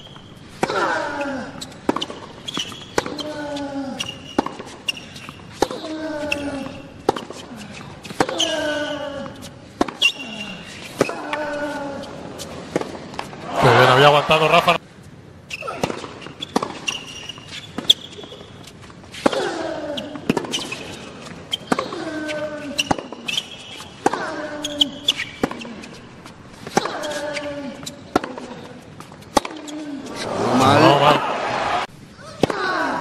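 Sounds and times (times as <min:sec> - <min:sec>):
player grunting: 0:13.5 - 0:14.8, 0:30.1 - 0:31.8
tennis ball bouncing: 0:20.2 - 0:20.8, 0:27.8 - 0:30.2
rising vocal exclamation: 0:30.1 - 0:31.9.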